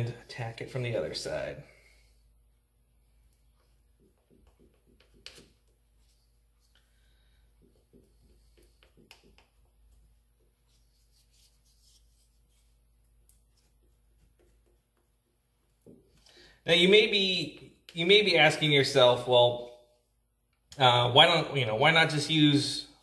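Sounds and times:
wooden stick tapping and scraping: 3.6 - 6.8, 7.5 - 16.2.

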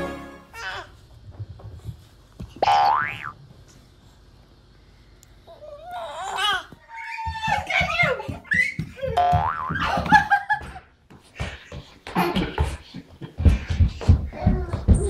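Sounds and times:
children squealing and vocalising: 5.5 - 10.1
toddlers crawling thumps on floor: 6.7 - 15.0.

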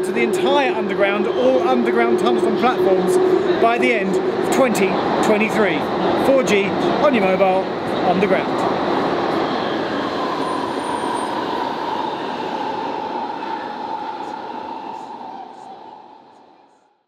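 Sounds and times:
train rushing noise with whine: 0.0 - 16.9.

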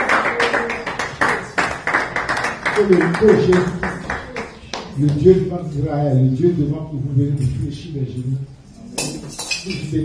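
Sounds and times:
rhythmic hand clapping: 0.0 - 5.3.

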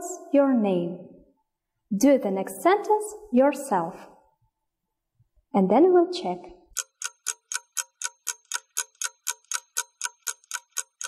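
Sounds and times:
clock ticking: 6.7 - 11.0.

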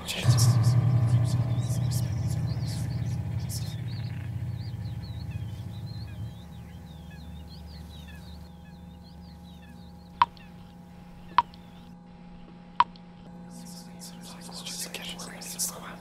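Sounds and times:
birds twittering: 0.0 - 12.6, 13.2 - 16.0
low drone: 0.0 - 16.0.

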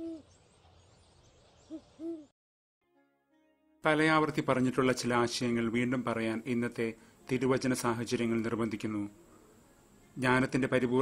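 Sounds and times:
owl hooting: 0.0 - 0.4, 1.7 - 2.3
faint outdoor night hiss: 3.8 - 11.0.

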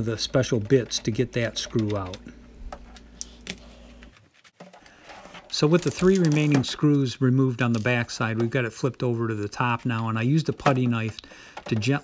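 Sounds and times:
faint steady hum: 0.0 - 5.5.

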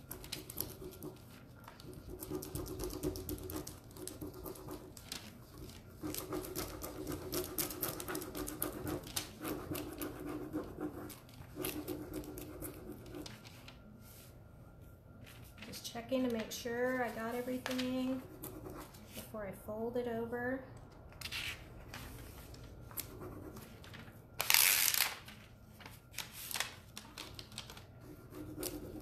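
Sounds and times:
rapid rubbing on a board: 0.2 - 13.3.

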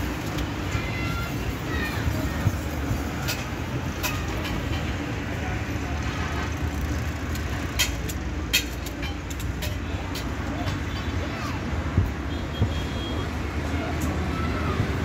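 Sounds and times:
road traffic rumble: 0.0 - 15.0.

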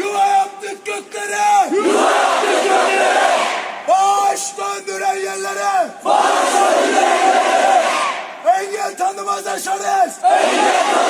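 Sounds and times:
man shouting: 0.0 - 1.9, 3.9 - 6.0, 8.4 - 10.2
crowd chanting in unison: 1.7 - 3.9, 6.0 - 8.4, 9.5 - 11.0.

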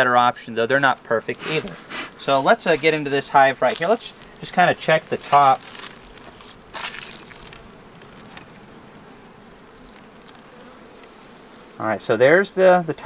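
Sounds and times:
bees buzzing: 0.0 - 13.0.

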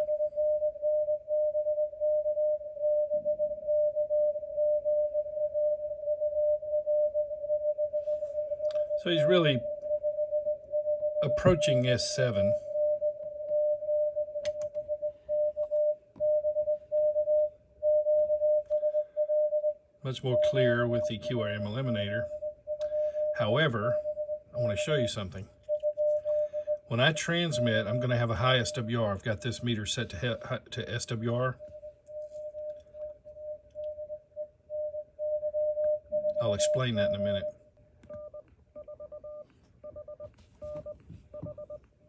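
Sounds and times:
morse code tone: 0.0 - 41.8
faint radio noise: 8.8 - 9.7, 11.2 - 12.7, 20.0 - 31.8, 36.3 - 37.6.

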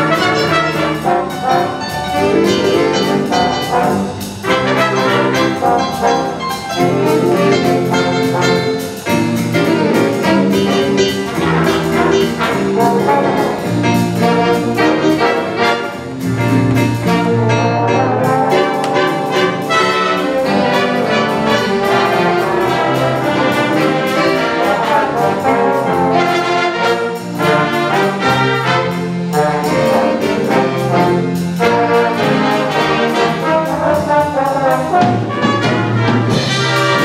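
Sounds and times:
jazz big band playing: 0.0 - 37.0.

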